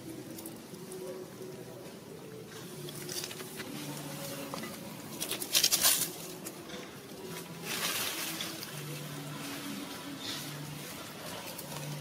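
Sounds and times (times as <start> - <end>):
crackling and rustling: 0.0 - 12.0.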